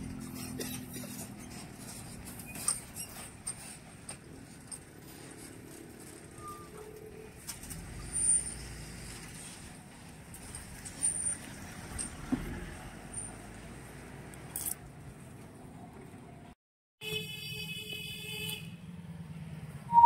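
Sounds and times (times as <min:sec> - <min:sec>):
road traffic rumble: 0:00.0 - 0:16.6, 0:17.6 - 0:20.0.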